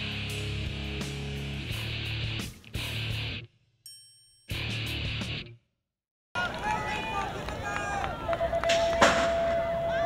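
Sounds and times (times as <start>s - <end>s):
spectators shouting: 6.4s - 10.0s.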